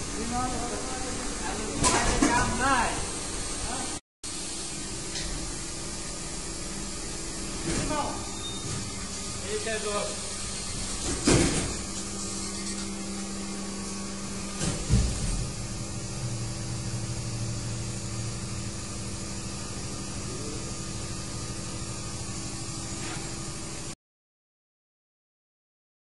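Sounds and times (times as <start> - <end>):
machinery humming and hissing: 0.0 - 24.0.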